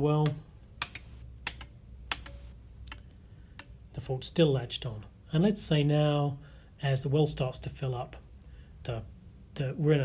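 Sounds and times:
toggle switch clicks: 0.2s - 3.8s.

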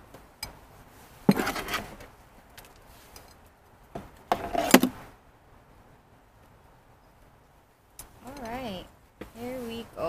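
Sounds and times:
trowel scraping soil: 1.2s - 2.0s.

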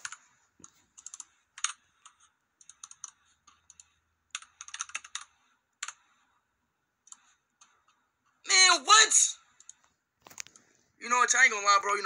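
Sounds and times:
keyboard typing: 0.0s - 6.4s, 7.0s - 8.4s.

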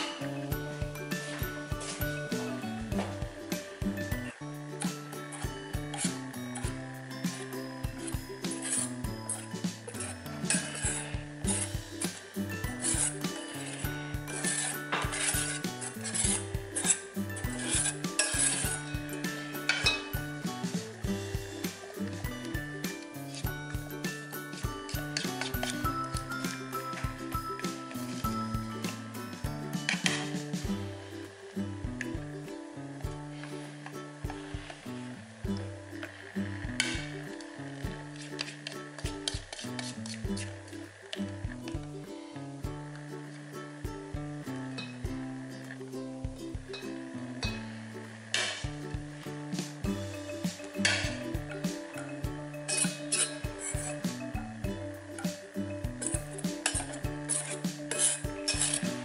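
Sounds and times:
background music with melody: 0.0s - 59.0s.

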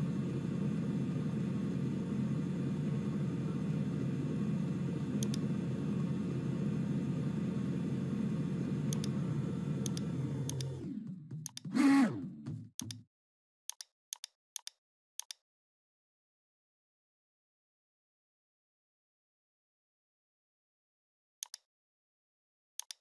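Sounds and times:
conveyor belts humming: 0.0s - 12.3s
mouse clicks: 5.2s - 5.4s, 8.9s - 9.1s, 9.8s - 10.7s, 21.4s - 21.7s, 22.8s - 23.0s.

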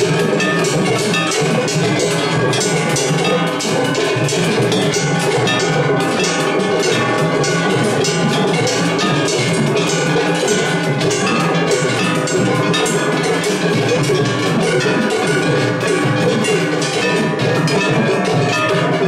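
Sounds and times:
hand gongs clanging: 0.0s - 19.0s
taiko drums beating: 0.0s - 19.0s.

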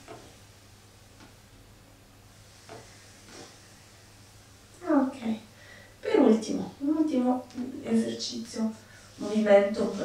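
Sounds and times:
soft hiss: 0.0s - 10.0s
steady low hum: 0.0s - 10.0s.

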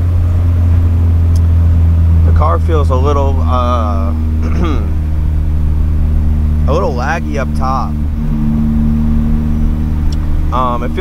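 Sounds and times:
car engine drone from inside: 0.0s - 11.0s
road noise: 0.0s - 11.0s.

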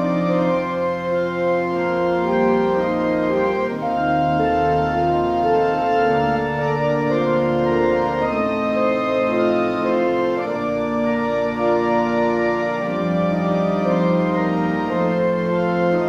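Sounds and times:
church organ chords: 0.0s - 16.0s.

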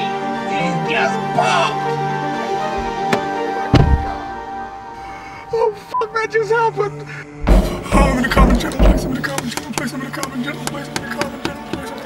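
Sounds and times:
low music drone: 0.0s - 10.6s
chaotic burst of thuds: 7.4s - 9.6s.

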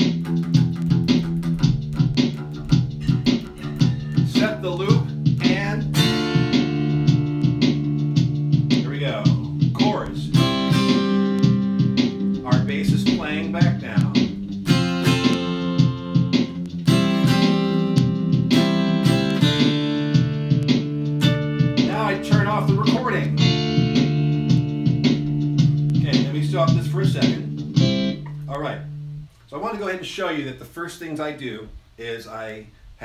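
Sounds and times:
drum-machine beat: 0.0s - 28.9s
looped bass line: 0.0s - 29.4s
plucked dulcimer chords: 0.9s - 29.2s
man speaking: 3.6s - 6.1s, 8.8s - 10.4s, 12.4s - 14.4s, 21.8s - 23.4s, 26.0s - 27.5s, 28.5s - 28.9s, 29.5s - 32.7s.

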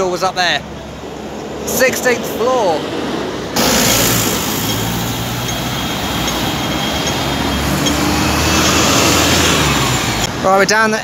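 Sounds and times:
bus engine droning: 0.0s - 10.9s
loud road traffic: 0.0s - 11.0s.

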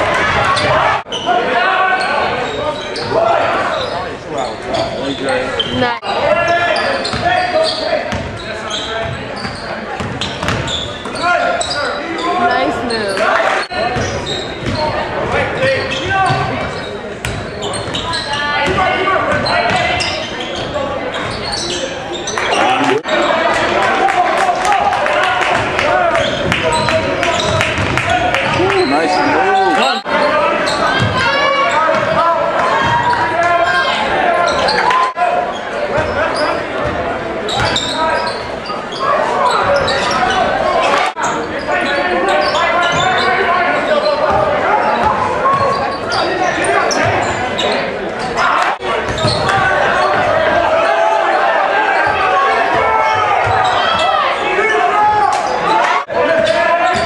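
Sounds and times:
voices of players and spectators: 0.0s - 57.0s.

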